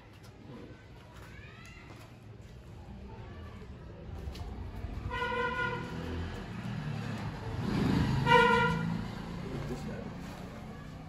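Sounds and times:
road traffic rumble: 0:02.9 - 0:11.0
vehicle horn toot: 0:05.1 - 0:06.0, 0:08.2 - 0:09.0.

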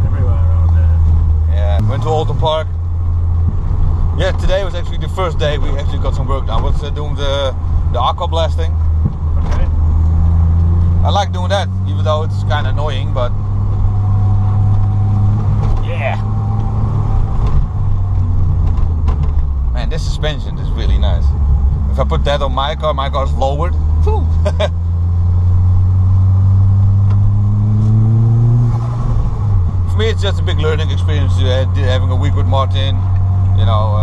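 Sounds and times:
car engine drone: 0:00.0 - 0:34.0.

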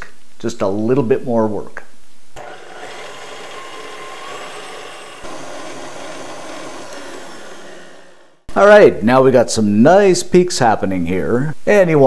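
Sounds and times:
stand mixer whisking: 0:02.4 - 0:08.5.

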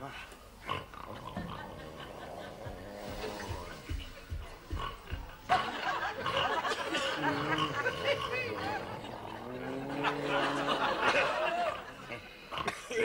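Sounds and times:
snoring: 0:01.0 - 0:04.0, 0:06.4 - 0:10.7
soft low thuds: 0:02.6 - 0:06.0.

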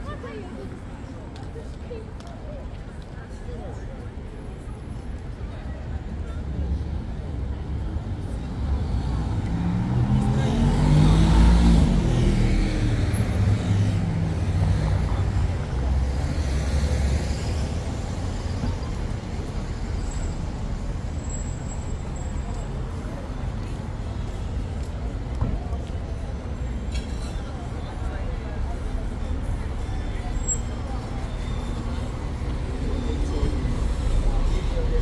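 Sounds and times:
steady traffic noise: 0:00.0 - 0:35.0
vehicle engines passing by: 0:00.0 - 0:35.0.

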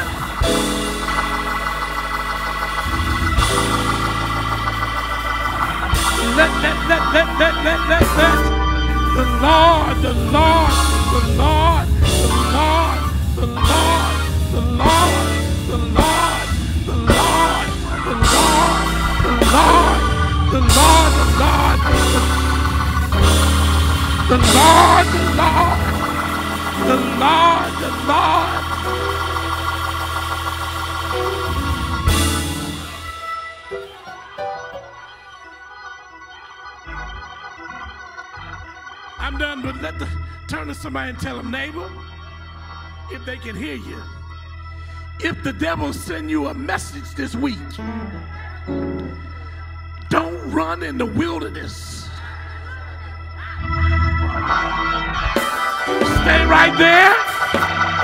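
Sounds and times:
organ chords: 0:00.0 - 0:58.0.

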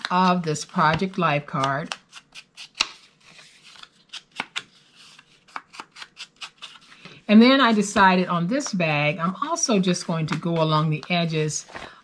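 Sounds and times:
foam tool tapping and scraping card: 0:04.1 - 0:06.9.

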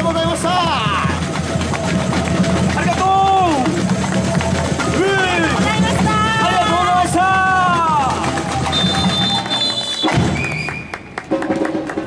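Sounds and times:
samba drums and percussion: 0:00.0 - 0:12.0.

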